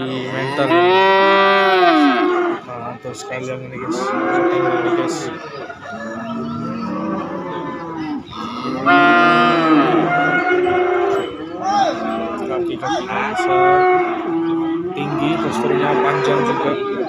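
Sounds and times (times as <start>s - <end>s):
cattle mooing: 0.0s - 2.8s, 3.8s - 17.0s.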